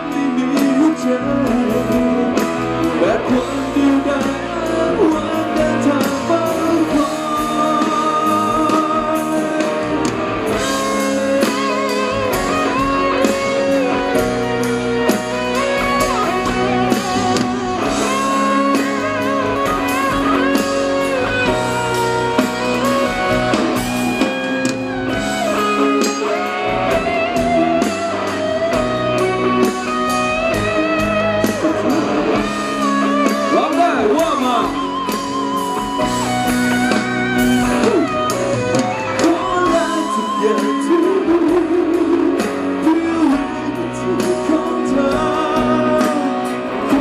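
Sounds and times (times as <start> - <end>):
acoustic-electric guitar: 0.0 - 47.0
live band music: 0.0 - 47.0.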